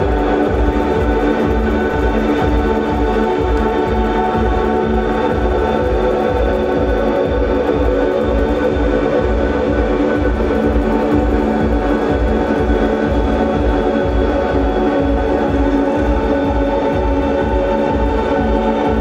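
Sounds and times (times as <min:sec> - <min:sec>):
electric guitar drone: 0:00.0 - 0:19.0
low pulse: 0:00.0 - 0:19.0.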